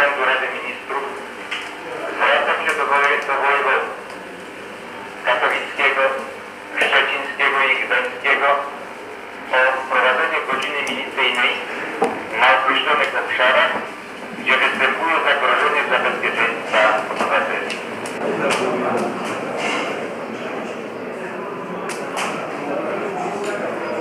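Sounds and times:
person talking indistinctly: 0.0s - 4.4s, 5.1s - 19.9s.

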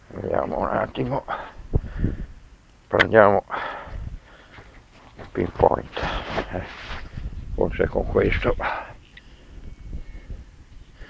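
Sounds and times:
rustling and scraping of dirt: 0.0s - 1.8s, 4.1s - 11.0s
thin faint high tone: 9.0s - 10.5s.

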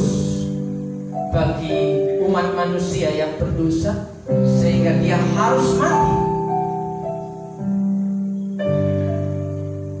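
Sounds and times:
live worship band music: 0.0s - 10.0s.

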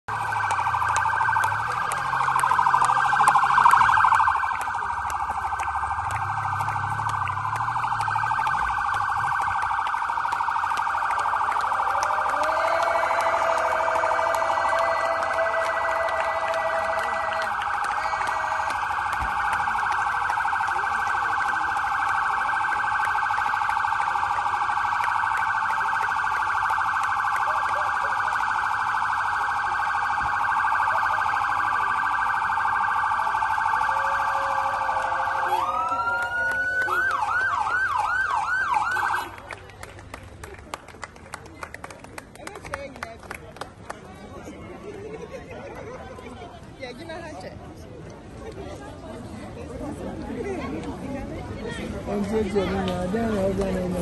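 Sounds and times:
police siren: 0.0s - 43.3s, 48.4s - 54.0s.

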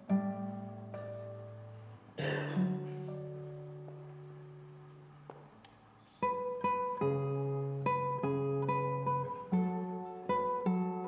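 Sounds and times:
classical guitar chord: 0.0s - 11.0s.

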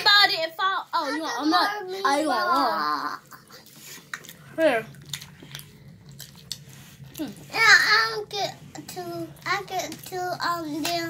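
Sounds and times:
chewing and biting food: 3.3s - 7.5s.

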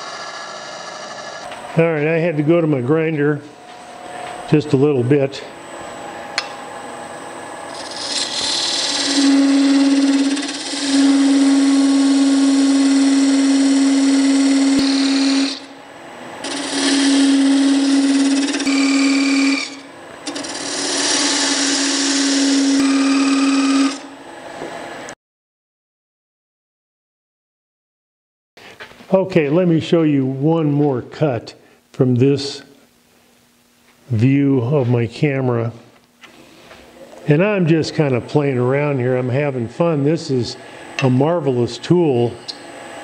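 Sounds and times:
lathe humming: 0.0s - 2.2s, 7.5s - 24.2s
parting tool cutting wood: 7.7s - 15.7s, 16.4s - 24.1s.

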